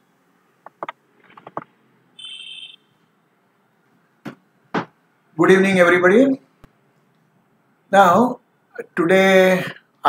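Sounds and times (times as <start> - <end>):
electronic beep: 2.2 - 2.9.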